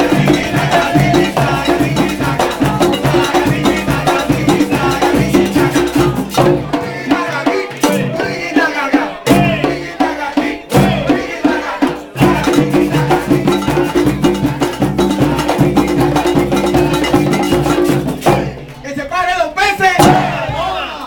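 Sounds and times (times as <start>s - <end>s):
frame drums playing fast rhythm: 0.0s - 20.9s
voices shouting: 19.6s - 21.0s.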